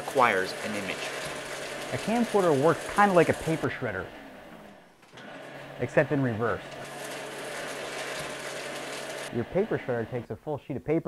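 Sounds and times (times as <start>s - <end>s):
paper shredder whirring: 0.0s - 10.3s.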